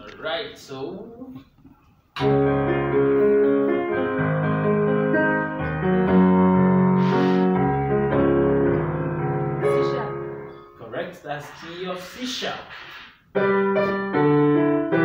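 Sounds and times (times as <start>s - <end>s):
electronic keyboard piano chords: 2.2s - 11.0s, 13.3s - 15.0s.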